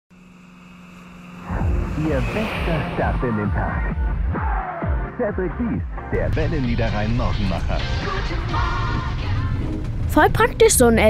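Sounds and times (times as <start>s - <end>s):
car engine hum: 0.1s - 5.1s, 6.0s - 11.0s
loud deep sound: 1.4s - 10.4s.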